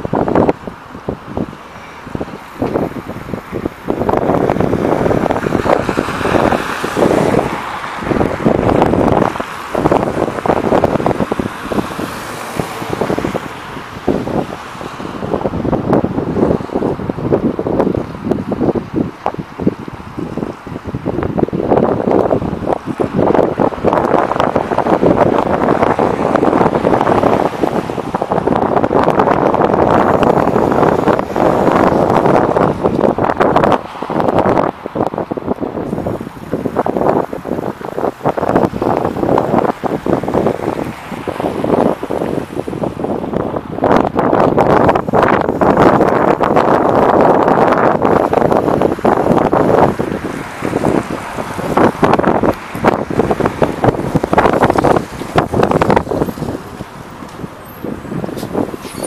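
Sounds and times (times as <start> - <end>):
city street traffic: 0.0 - 59.0
wind buffeting microphone: 0.0 - 59.0.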